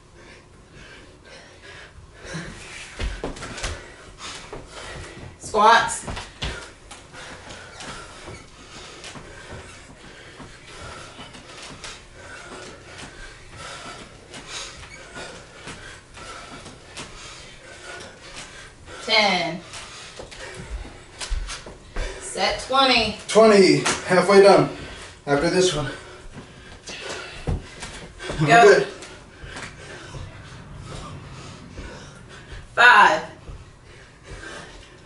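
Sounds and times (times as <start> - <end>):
people breathing hard: 0.0 - 5.4, 6.0 - 22.4, 24.6 - 35.0.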